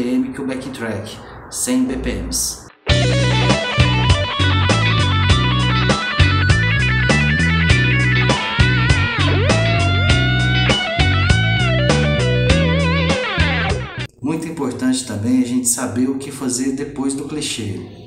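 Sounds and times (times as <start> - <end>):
backing track with bass and beat: 2.6 - 14.2
electric guitar lick with delay: 2.9 - 14.1.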